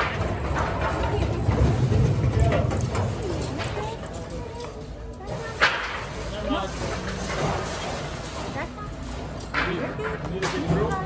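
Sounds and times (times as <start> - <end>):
voices in background: 0.3 - 11.0.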